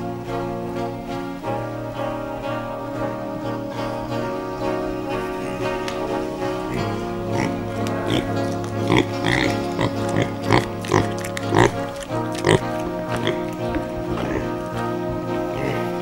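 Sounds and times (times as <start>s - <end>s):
background music with held tones: 0.0s - 16.0s
piglet grunting: 4.7s - 14.8s, 15.4s - 16.0s.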